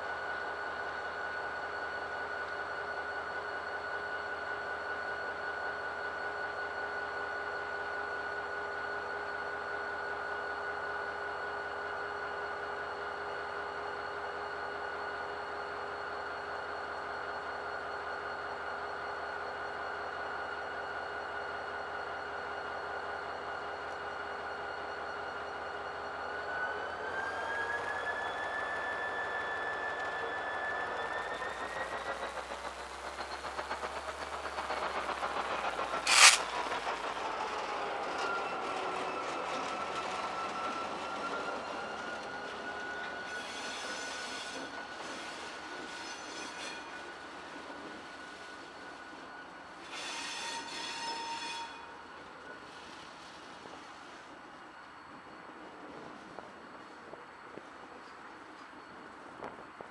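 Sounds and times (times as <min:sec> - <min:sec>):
diesel locomotive whine: 0:00.0 - 0:59.9.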